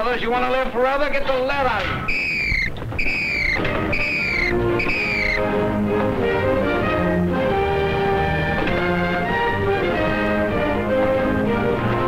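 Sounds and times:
high whistle-like signal tone: 2.1 - 5.5
orchestral music: 3.3 - 12.0.

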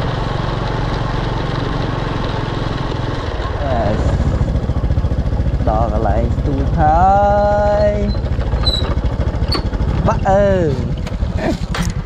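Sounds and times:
scooter engine running: 0.0 - 12.0
person giving drawn-out call: 7.0 - 8.2.

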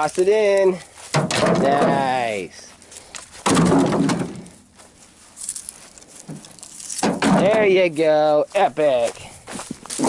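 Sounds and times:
dry branches rustling and crackling: 0.0 - 10.0.

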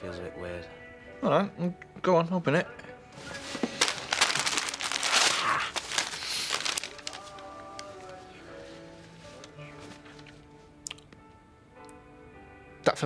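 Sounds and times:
soft background music: 0.0 - 13.0
wrapping paper rustling and crumpling: 3.2 - 9.3.

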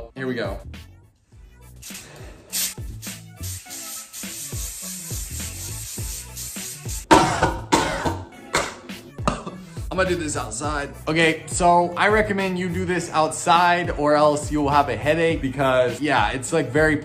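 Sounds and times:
aerosol spray hissing: 1.8 - 7.1
person coughing: 7.1 - 8.3, 9.2 - 9.7.

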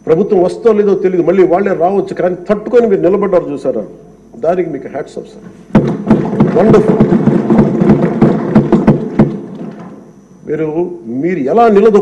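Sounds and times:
applause: 6.1 - 9.8.

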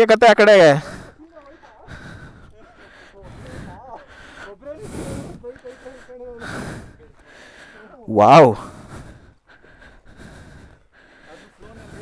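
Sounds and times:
faint men talking: 0.0 - 9.2, 10.6 - 12.0
heavy breath on microphone: 0.8 - 12.0.

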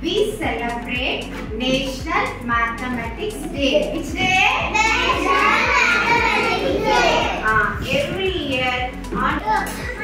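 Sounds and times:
young children calling out: 4.6 - 7.4.

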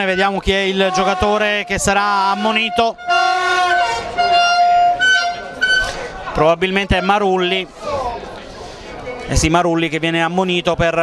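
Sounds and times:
horn blast: 0.0 - 6.1.

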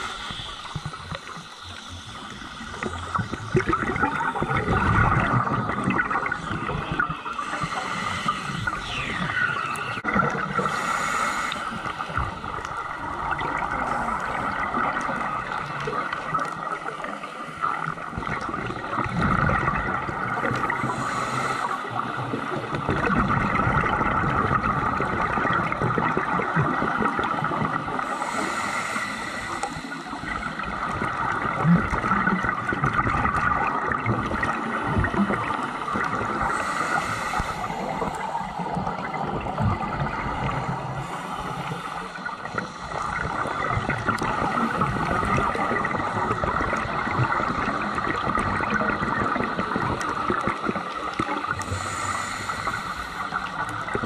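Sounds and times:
muffled underwater noise: 0.0 - 54.0
regulator bubbles gurgling: 0.0 - 54.0.

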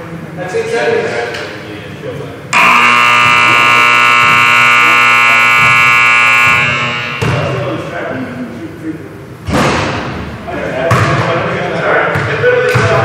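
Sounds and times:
electric buzzer tone: 2.6 - 7.8.

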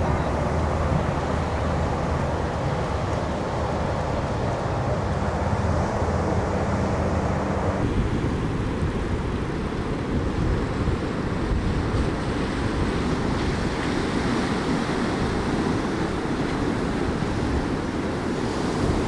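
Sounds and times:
waves breaking on shore: 0.0 - 19.0
wind buffeting microphone: 0.0 - 19.0.

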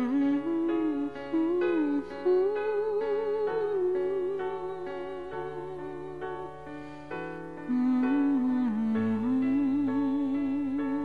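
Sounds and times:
woman humming a melody: 0.0 - 6.6, 7.7 - 11.0
sustained piano chords: 0.0 - 11.0.

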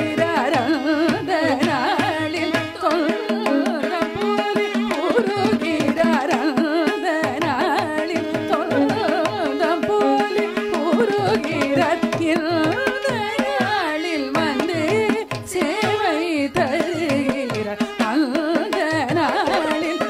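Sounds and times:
violin: 0.0 - 20.0
woman singing: 0.0 - 20.0.

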